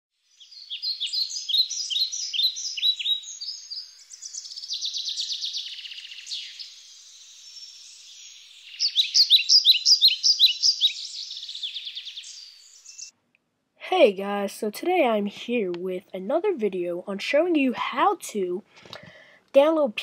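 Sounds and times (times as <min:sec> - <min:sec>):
buzzy bird trill: 0:00.2 - 0:13.1
small birds chirping: 0:00.2 - 0:13.2.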